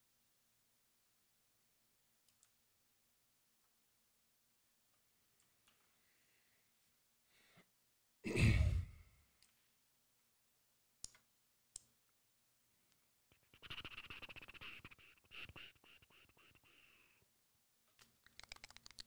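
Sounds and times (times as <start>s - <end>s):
person sighing heavily: 8.2s - 9.2s
rapid clicking: 18.3s - 19.0s.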